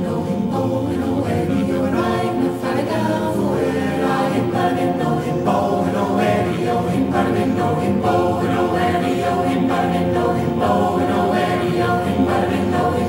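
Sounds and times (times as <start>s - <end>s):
choir singing a cappella: 0.0s - 13.0s.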